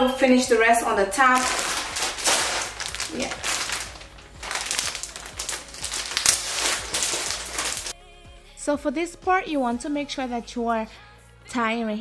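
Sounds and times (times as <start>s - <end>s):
plastic packet crinkling: 1.2s - 7.9s.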